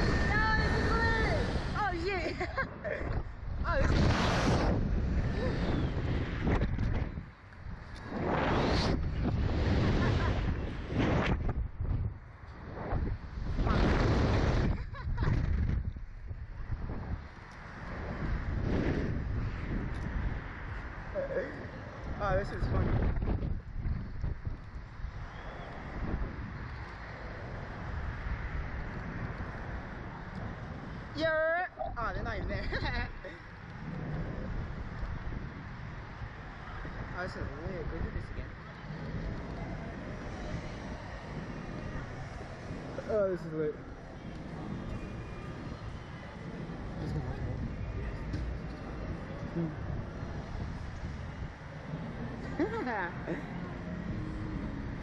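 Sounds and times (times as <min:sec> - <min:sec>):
wind rushing over microphone: 0:00.0 - 0:55.0.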